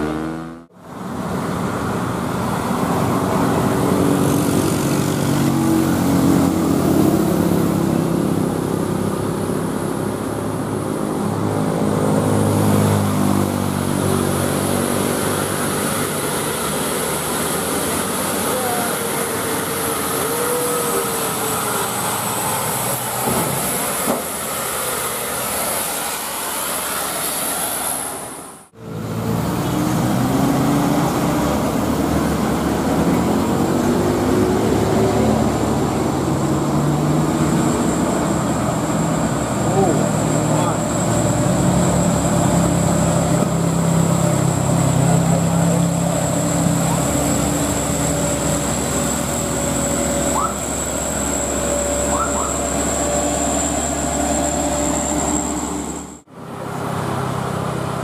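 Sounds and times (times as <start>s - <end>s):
motorcycles passing: 0.0s - 23.2s
dump truck diesel engines labouring: 0.0s - 58.0s
road traffic: 0.0s - 58.0s.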